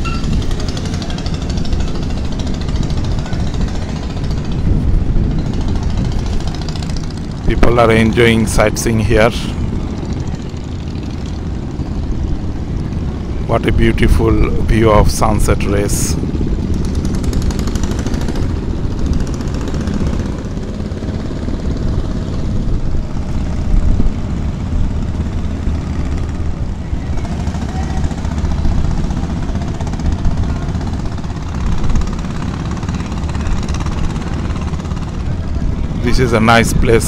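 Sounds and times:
boat engines droning: 0.0 - 37.0
wind buffeting microphone: 0.0 - 37.0.

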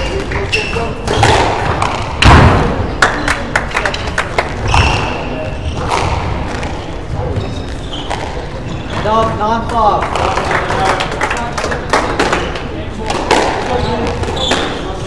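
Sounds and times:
shoes squeaking on wooden floor: 0.0 - 1.4, 4.6 - 9.9, 13.7 - 15.0
squash ball knocks and thuds: 1.1 - 2.9.

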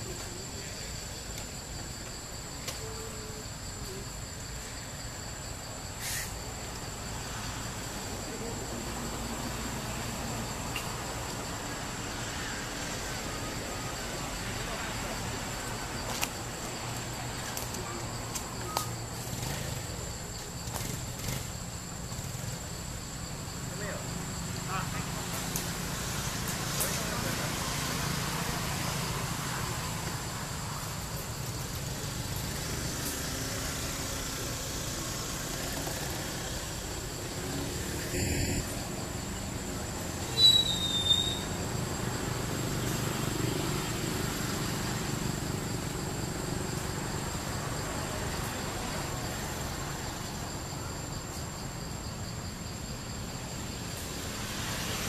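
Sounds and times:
distant traffic: 0.0 - 55.0.

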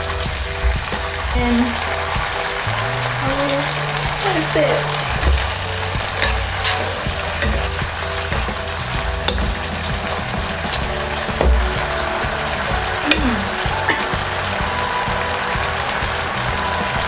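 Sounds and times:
food sizzling in a wok: 0.0 - 17.0.

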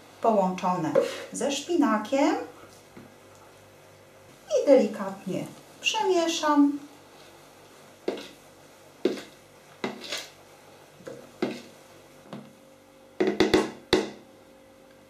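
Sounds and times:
spoon knocking plastic bowl: 13.2 - 14.2.

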